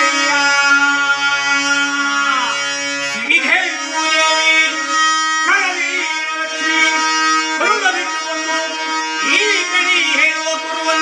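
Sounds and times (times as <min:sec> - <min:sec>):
harmonium sustained chord: 0:00.0 - 0:11.0
person singing: 0:00.0 - 0:11.0.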